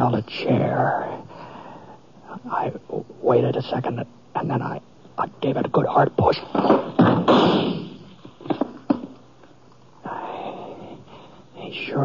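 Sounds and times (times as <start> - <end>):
wooden chair clattering over: 6.5 - 9.2.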